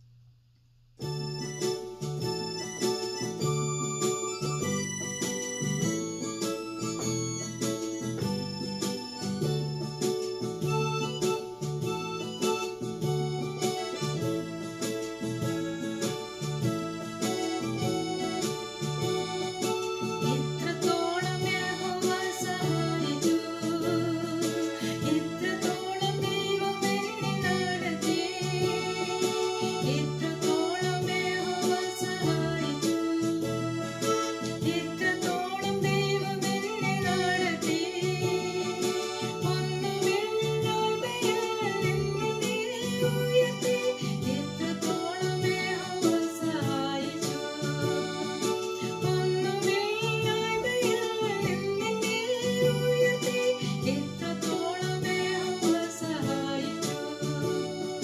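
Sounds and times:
electronic keyboard bass and chords: 1.0s - 58.0s
woman singing: 19.6s - 33.4s, 34.2s - 58.0s.

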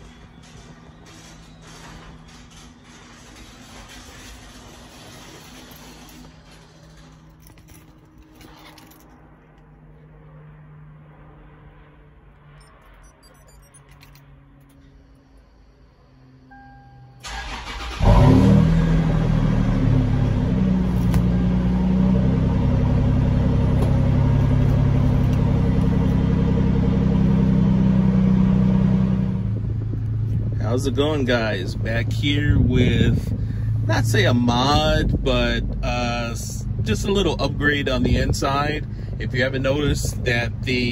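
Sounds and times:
car engine idling: 17.2s - 40.9s.

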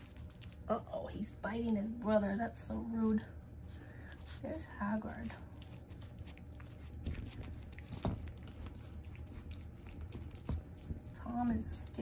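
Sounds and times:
puppies chewing on blanket: 0.0s - 12.0s.

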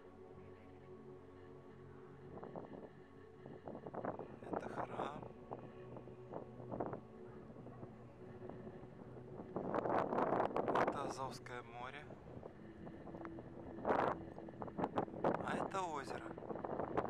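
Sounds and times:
wind buffeting microphone: 1.6s - 17.0s.

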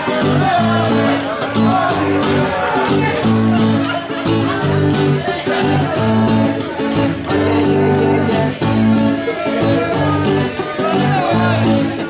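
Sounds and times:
instrumental concert music: 0.0s - 12.0s.

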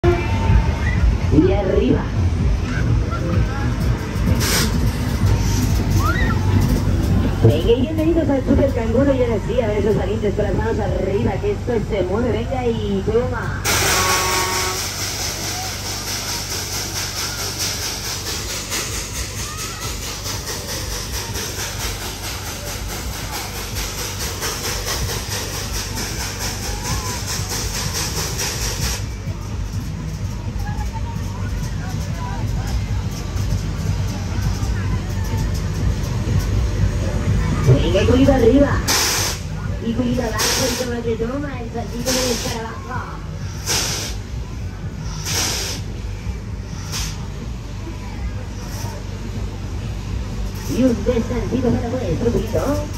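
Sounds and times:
ride machinery rumble: 0.0s - 52.9s
faint riders' voices: 0.1s - 10.1s, 13.4s - 52.9s
high hiss: 45.0s - 47.3s.

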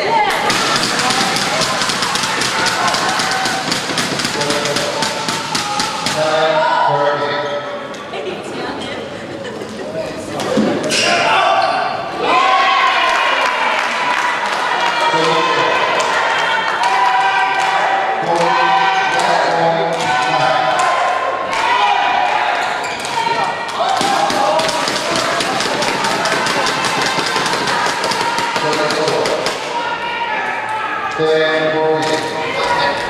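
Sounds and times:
people talking: 0.0s - 12.4s.

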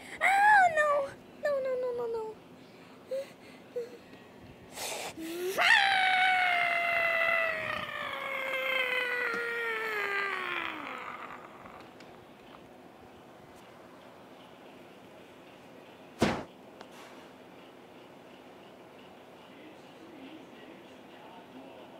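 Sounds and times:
child screaming: 5.2s - 11.8s.

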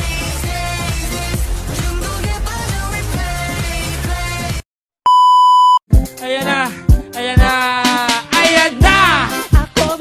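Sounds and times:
music with singing and beat: 0.0s - 4.6s, 5.9s - 10.0s
high-pitched test-tone beep: 5.1s - 5.8s.

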